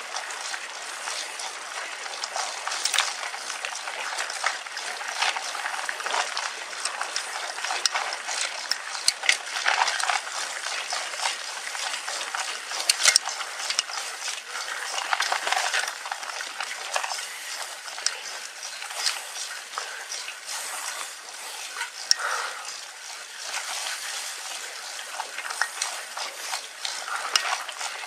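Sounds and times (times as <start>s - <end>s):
bike clicks and rattles: 0.0s - 28.0s
bike tyres on dirt trail: 0.0s - 28.0s.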